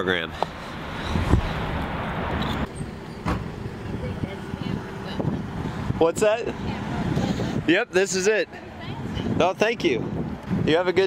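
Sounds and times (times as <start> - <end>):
wind on microphone: 1.0 - 7.8, 8.6 - 11.0.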